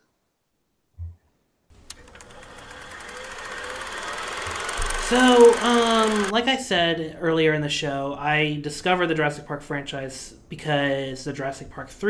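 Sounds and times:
fast mechanical clatter: 1.9 - 6.3.

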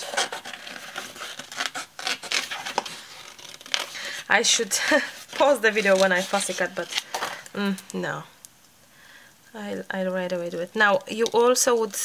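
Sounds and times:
paper rustling and crinkling: 0.0 - 7.6.

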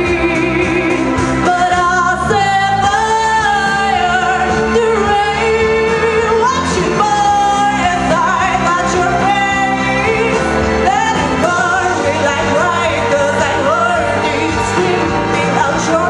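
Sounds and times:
girl singing pop song: 0.0 - 16.0
recorded backing track: 0.0 - 16.0.

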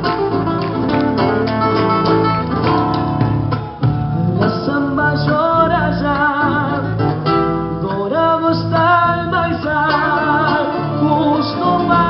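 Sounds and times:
drums: 0.0 - 12.0
guitar: 0.0 - 12.0
man singing into a microphone: 4.1 - 12.0.

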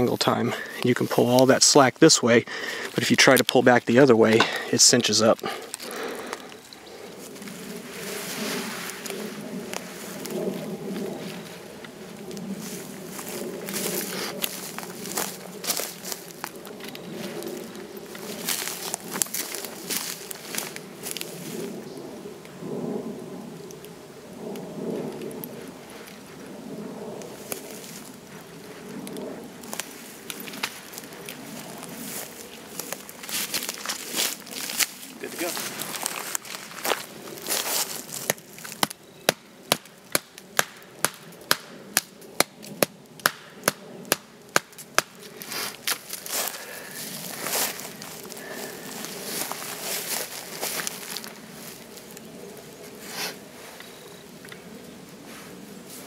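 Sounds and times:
hammock rustling: 5.6 - 21.7, 26.2 - 38.8, 45.2 - 52.9.

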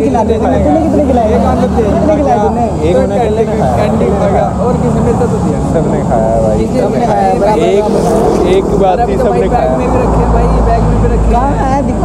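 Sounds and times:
people talking: 0.0 - 12.0
road traffic rumble: 0.0 - 12.0
car passing by: 0.6 - 12.0.

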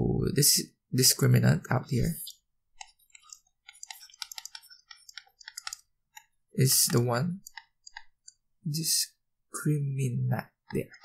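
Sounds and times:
stylus clicking on tablet: 1.9 - 8.6, 10.5 - 11.0.

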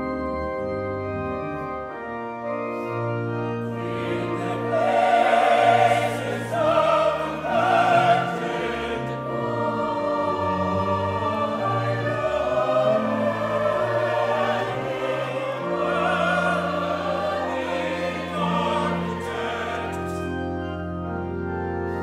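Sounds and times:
church choir singing: 0.0 - 22.0
organ playing: 0.0 - 22.0.

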